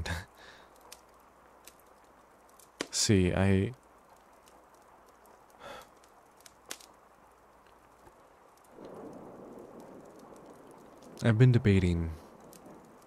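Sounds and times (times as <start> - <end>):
soft drawn-out breath: 0.3 - 0.8, 5.6 - 6.0
breathy sound: 5.6 - 6.0.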